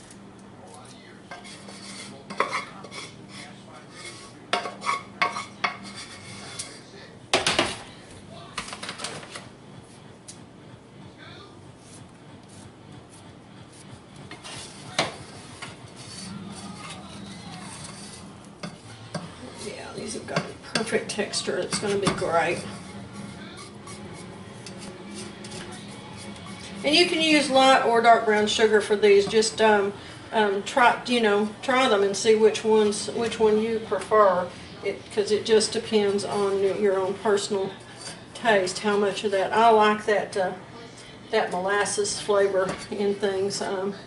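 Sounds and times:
low steady hum: 0.0s - 44.0s
spoons scraping and clinking on saucepan: 1.3s - 6.8s, 14.3s - 27.8s, 35.4s - 39.2s.

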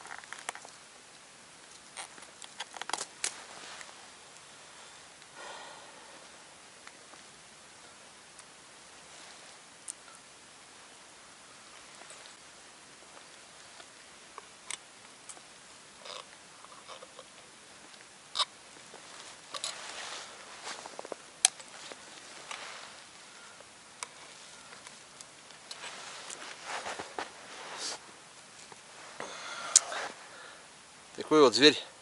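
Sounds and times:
rustling of cloth and snow: 0.0s - 32.0s.

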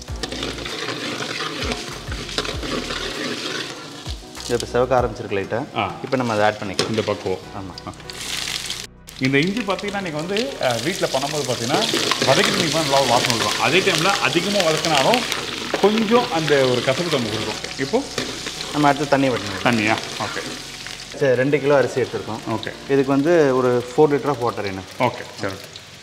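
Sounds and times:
metal ladle stirring: 0.0s - 4.8s, 6.1s - 23.0s
spices sizzling in hot oil: 0.0s - 26.0s
men talking: 4.4s - 8.2s, 9.2s - 25.7s.

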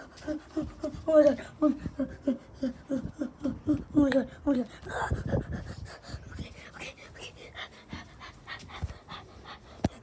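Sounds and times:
rapid panting breaths: 4.7s - 10.0s.

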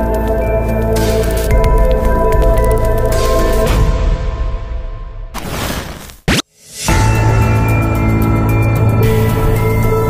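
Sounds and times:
background music with low bass: 0.0s - 5.2s, 6.8s - 10.0s.

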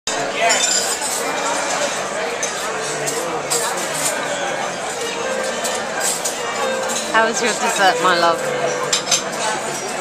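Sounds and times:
cutlery and dishes clinking: 0.1s - 10.0s
hubbub of diners' voices: 0.1s - 10.0s.

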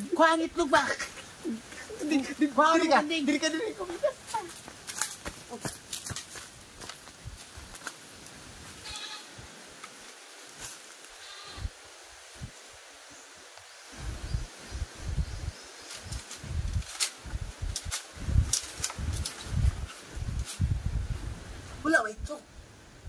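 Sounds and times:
goat bleating: 8.8s - 9.3s, 11.2s - 11.7s.

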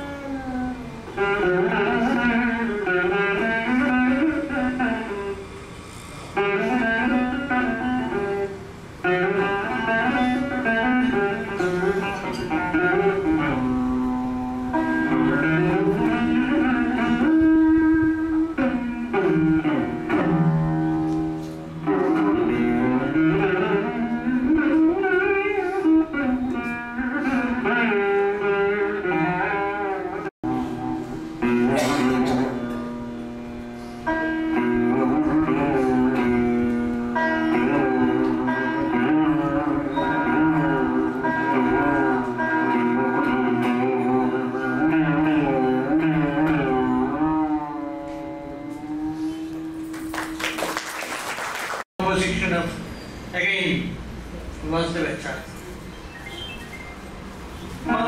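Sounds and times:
plucked veena notes: 0.0s - 5.4s, 6.4s - 49.9s.

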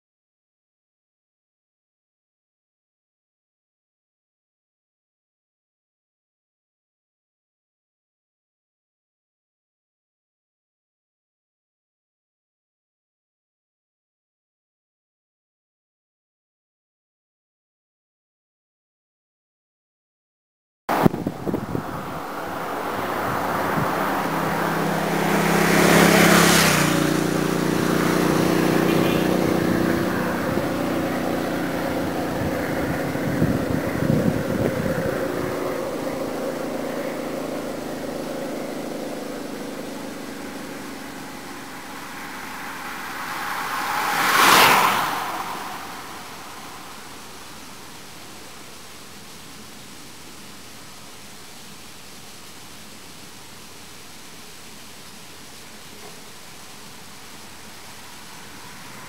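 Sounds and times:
motorcycle passing: 20.9s - 48.6s, 56.8s - 59.0s
cyclists sweeping past: 20.9s - 59.0s.

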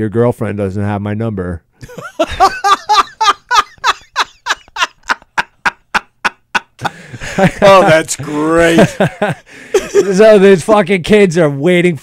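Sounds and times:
men laughing hard: 1.8s - 10.4s.

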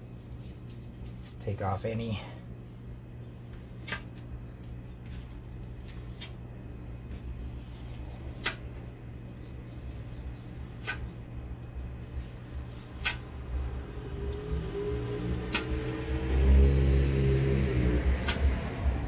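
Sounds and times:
low rumble with hum: 0.0s - 19.0s.

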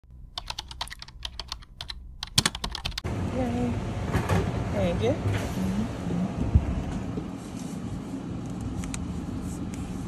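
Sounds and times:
keyboard typing clicks: 0.3s - 3.0s.

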